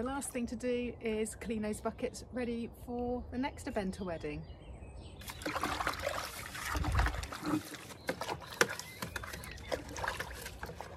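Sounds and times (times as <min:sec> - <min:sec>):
brush scrubbing plastic bucket: 0:05.2 - 0:10.9.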